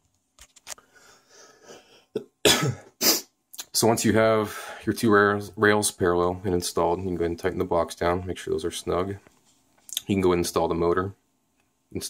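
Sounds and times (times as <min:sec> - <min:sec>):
soft rubbing and scraping: 0:08.6 - 0:09.9.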